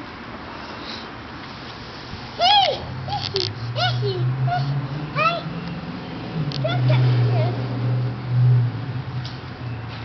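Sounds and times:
toddler high-pitched call: 2.4 - 5.5.

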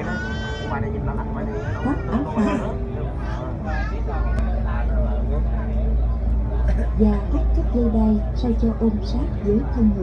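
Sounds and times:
steady low engine hum: 0.0 - 10.0.

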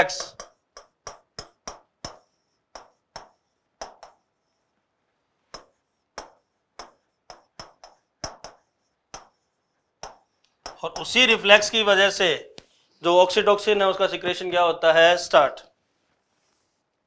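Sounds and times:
pen tapping on touchscreen: 0.0 - 4.3, 5.5 - 11.2.

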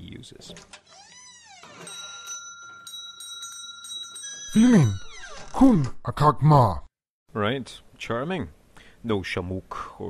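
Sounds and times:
small bell ringing: 1.8 - 5.1
man's loud short utterance: 4.5 - 5.0.

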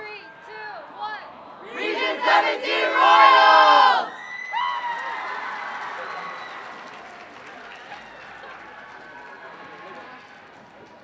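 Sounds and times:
crowd chanting a cheer: 1.4 - 4.2
high whoops: 4.1 - 7.0
audience applause and cheering: 4.2 - 11.0.

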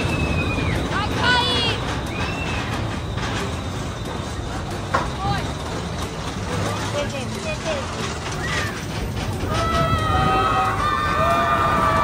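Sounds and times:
roller coaster rumbling on track: 0.0 - 12.0
riders screaming: 8.3 - 12.0.

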